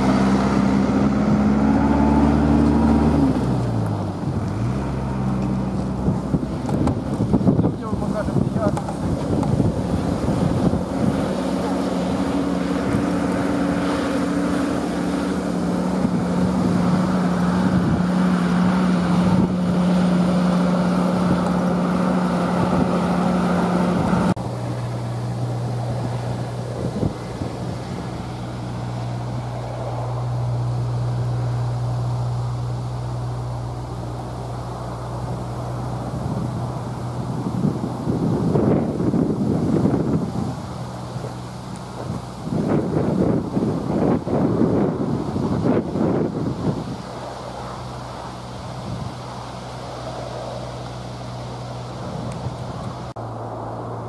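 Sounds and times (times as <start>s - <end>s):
diesel engine running: 0.0s - 54.0s
wind buffeting microphone: 0.0s - 54.0s.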